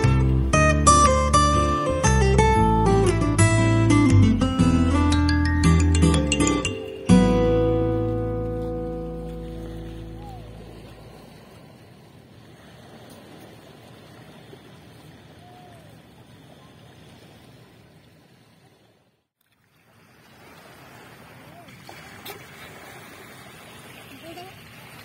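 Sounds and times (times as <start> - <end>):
ringing musical chord: 4.1 - 10.7
waves lapping on pebble beach: 8.9 - 19.0, 19.6 - 25.0.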